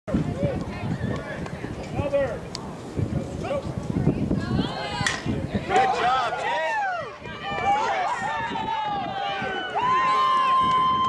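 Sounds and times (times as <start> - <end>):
people calling out: 4.4 - 11.0
drawn-out shouts: 5.7 - 11.0.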